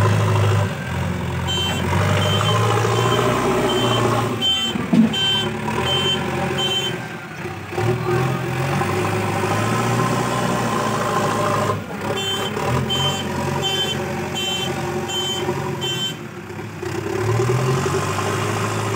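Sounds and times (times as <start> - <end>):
diesel engine running: 0.0 - 18.9
reversing alarm beeps: 1.5 - 7.0.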